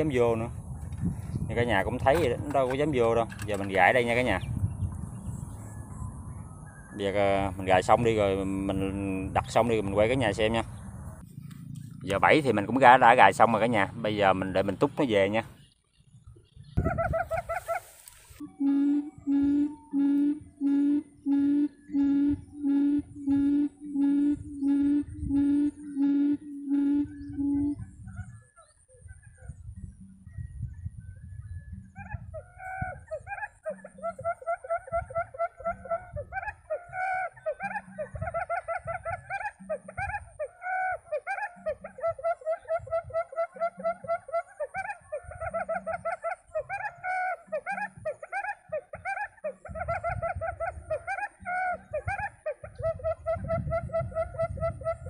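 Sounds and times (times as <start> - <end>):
quail call through loudspeaker: 1.5 - 4.5, 6.7 - 11.2, 16.7 - 30.1, 31.7 - 55.0.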